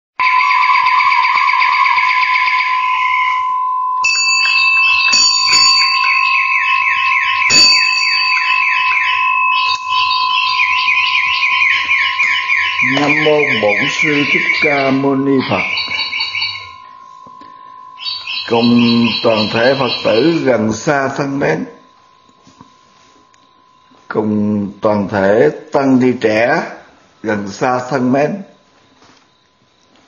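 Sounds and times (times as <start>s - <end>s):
steady high-pitched tone: 2.2s - 30.0s
fast repeating chirps: 4.4s - 22.0s
man talking: 12.8s - 15.9s, 18.5s - 21.8s, 24.1s - 28.5s.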